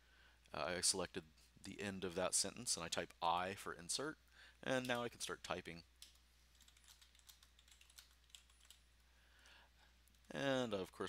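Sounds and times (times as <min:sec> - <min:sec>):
computer keyboard typing: 0:04.8 - 0:05.1, 0:06.0 - 0:08.8.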